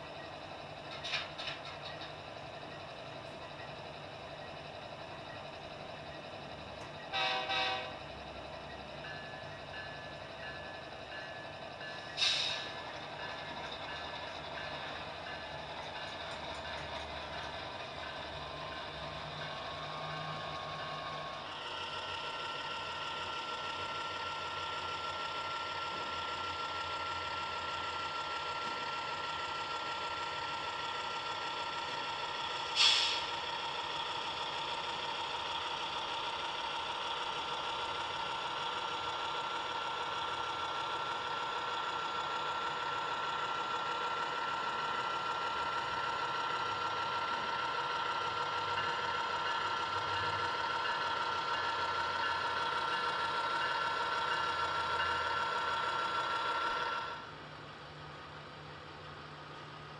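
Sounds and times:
model train motor and gear whine: 0.0 - 59.9
wheels on track: 0.0 - 59.9.

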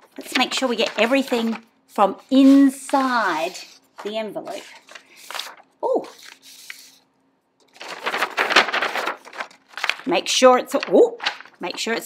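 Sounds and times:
paper envelope rustling: 0.0 - 12.0.

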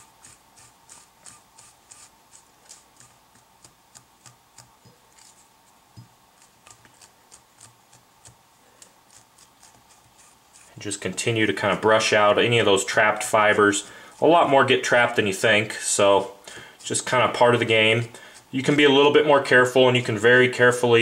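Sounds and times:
stiff brush raking fur fibers: 0.0 - 20.6.

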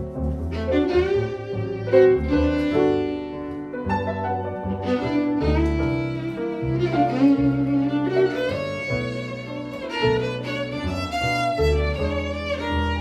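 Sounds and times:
bowed violin melody: 0.0 - 13.0
double bass low notes: 0.0 - 13.0
piano chords: 0.0 - 13.0.

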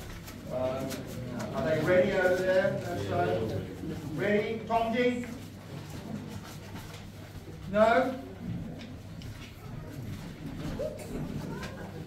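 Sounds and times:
man talking: 0.4 - 5.4, 7.6 - 8.3.

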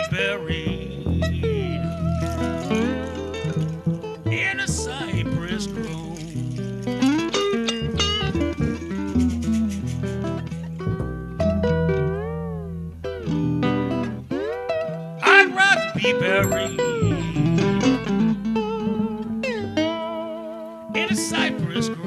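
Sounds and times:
upright bass line: 0.0 - 14.4, 15.2 - 20.3
slide guitar: 0.0 - 22.0
blues band playing: 0.2 - 22.0.

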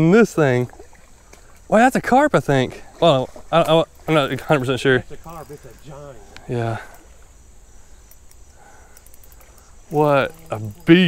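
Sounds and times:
insect drone: 0.0 - 11.0
soft ticks: 8.0 - 11.0.

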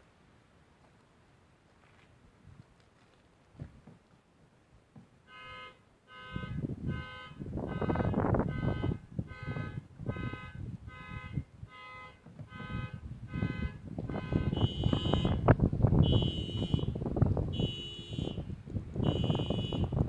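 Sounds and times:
rustling and knocking: 2.9 - 5.2, 12.2 - 12.5
electronic alarm beeping: 16.0 - 16.9, 19.1 - 19.9.

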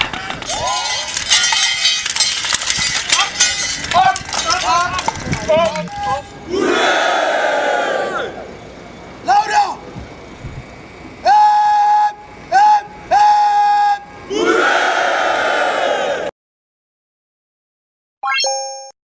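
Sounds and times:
cadets shouting in unison: 5.9 - 8.5, 11.2 - 16.3.

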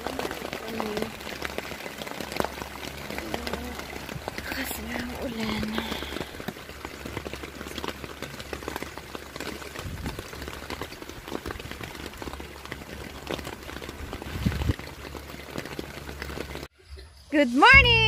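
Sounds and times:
rain pattering on tent fabric: 0.0 - 16.7.

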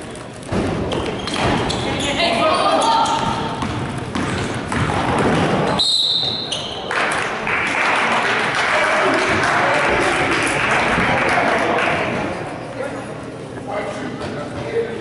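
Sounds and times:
crowd voices: 0.0 - 15.0
basketball dribbling: 3.0 - 5.8
referee's whistle: 5.8 - 6.8
crowd cheering and applause: 6.9 - 12.1.

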